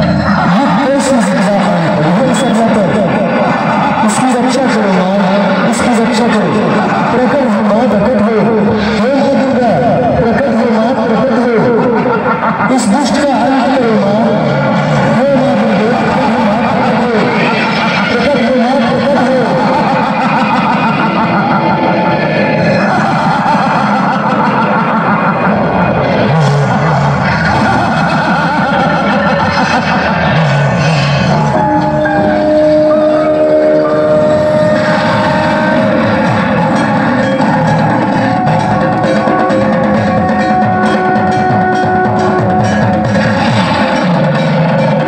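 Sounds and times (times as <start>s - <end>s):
soundtrack music over loudspeaker: 0.0s - 45.0s.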